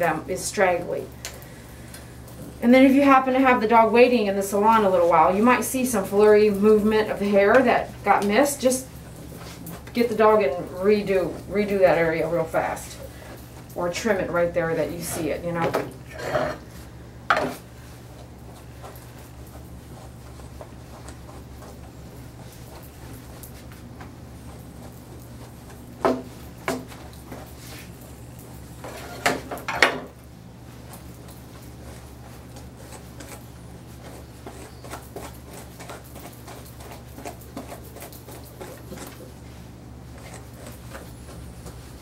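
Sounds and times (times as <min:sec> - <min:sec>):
steady low hum: 0:00.0 - 0:42.0
brush scratching dog coat: 0:02.9 - 0:15.6, 0:17.6 - 0:29.2, 0:30.7 - 0:42.0.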